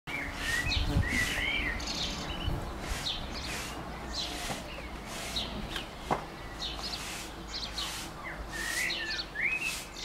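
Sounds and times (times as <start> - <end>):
sliding whistled bird notes: 0.1 - 1.9, 6.7 - 10.0
birds chirping: 0.1 - 10.0.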